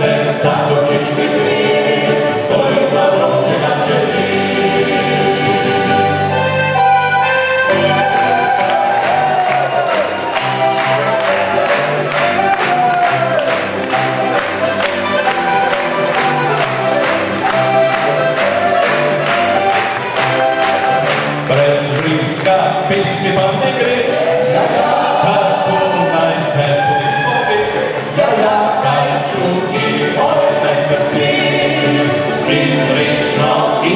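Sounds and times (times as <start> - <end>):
male vocal group singing: 0.0 - 6.2, 21.5 - 33.9
button accordion: 0.0 - 25.4
acoustic guitar: 0.0 - 33.9.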